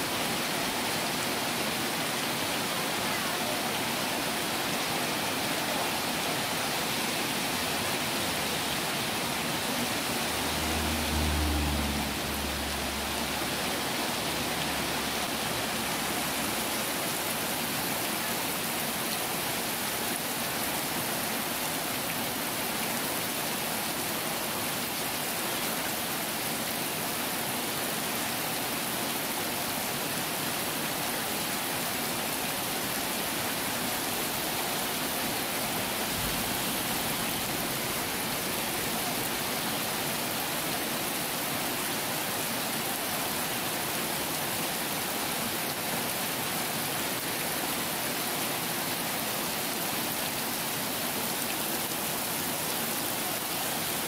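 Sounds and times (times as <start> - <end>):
heavy rain hissing: 0.0 - 54.0.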